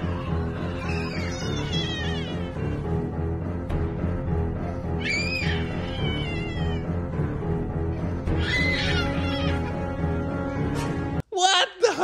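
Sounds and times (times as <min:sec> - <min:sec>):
toddler crying: 0:00.0 - 0:02.8, 0:05.0 - 0:06.9, 0:08.2 - 0:10.7
background music: 0:00.0 - 0:12.0.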